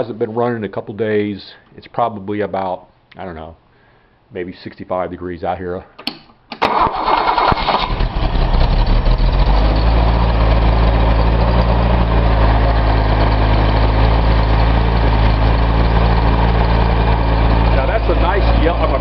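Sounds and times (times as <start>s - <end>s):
starter motor cranking: 6.6s - 9.4s
car engine idling: 7.8s - 19.0s.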